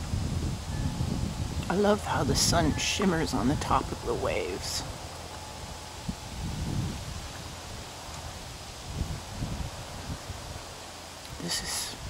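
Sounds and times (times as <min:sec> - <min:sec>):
wind buffeting microphone: 0:00.0 - 0:12.0
wind through tree leaves: 0:00.0 - 0:12.0.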